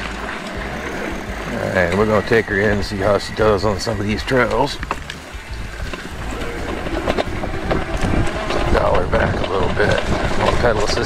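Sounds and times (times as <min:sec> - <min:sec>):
low tyre rumble: 0:00.0 - 0:11.0
suspension fork clatter and rattle: 0:00.0 - 0:11.0.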